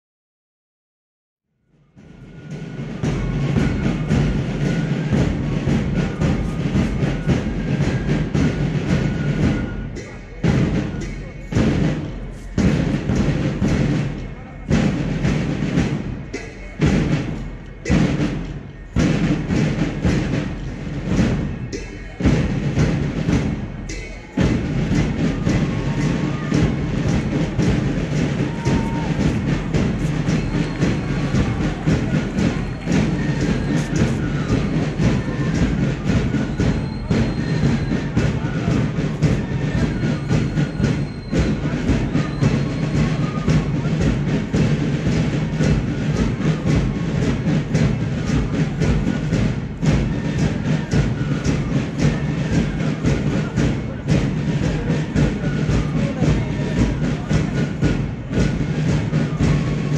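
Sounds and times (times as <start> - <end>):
heavy drum strikes: 1.9 - 59.9
march music: 1.9 - 59.9.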